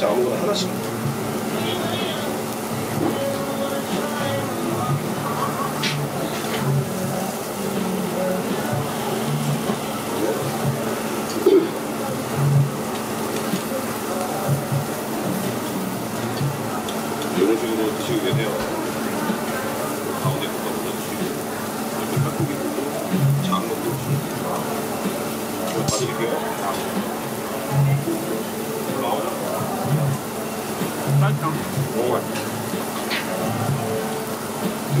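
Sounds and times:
indistinct voices: 0:00.0 - 0:35.0
meat sizzling on a grill: 0:00.0 - 0:35.0
music: 0:00.0 - 0:35.0.

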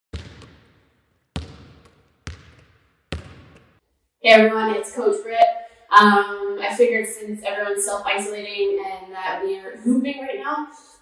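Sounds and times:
basketball bouncing on hard floor: 0:00.1 - 0:03.8.

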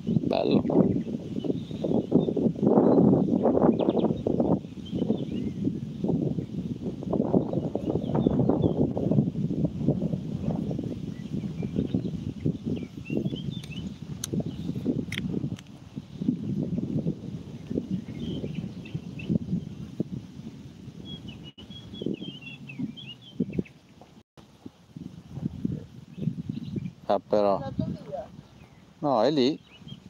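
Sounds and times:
small birds chirping: 0:00.0 - 0:06.6, 0:07.3 - 0:09.3, 0:10.6 - 0:15.3, 0:17.0 - 0:20.0, 0:21.0 - 0:24.2, 0:26.1 - 0:30.0
wind buffeting microphone: 0:00.0 - 0:30.0.

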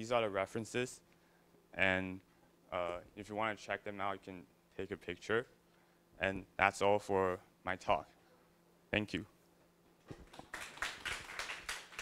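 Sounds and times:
audience applauding: 0:10.2 - 0:12.0.

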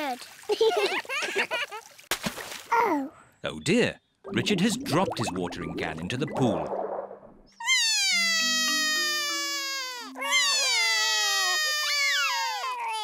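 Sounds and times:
cartoon toddler crying: 0:07.6 - 0:13.0.

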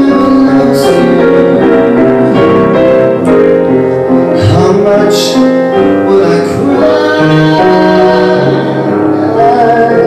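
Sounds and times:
man singing into a microphone: 0:00.0 - 0:02.4, 0:04.3 - 0:10.0
jazz combo with piano and bass: 0:00.0 - 0:10.0.

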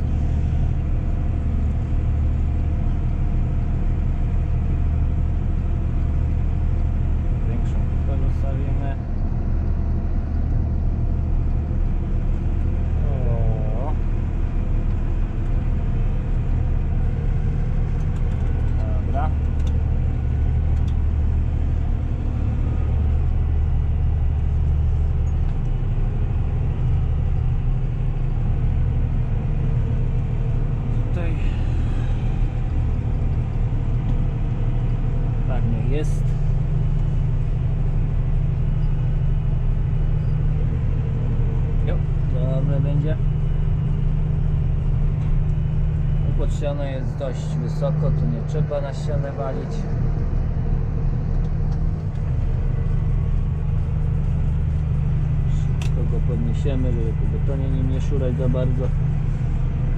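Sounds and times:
tractor engine running under load: 0:00.0 - 0:59.9.

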